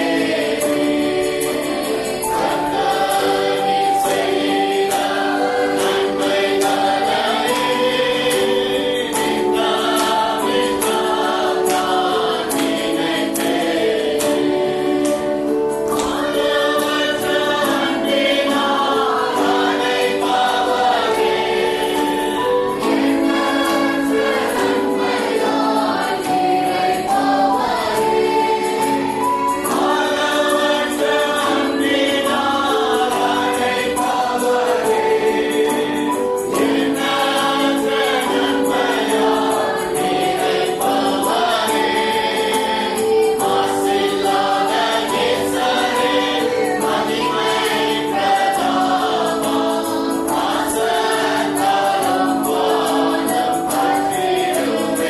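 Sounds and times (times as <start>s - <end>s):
choir singing gospel song: 0.0s - 55.0s.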